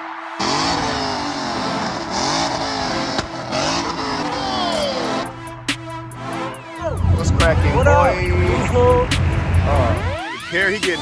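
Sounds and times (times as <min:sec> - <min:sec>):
car engine revving hard: 0:00.4 - 0:05.3.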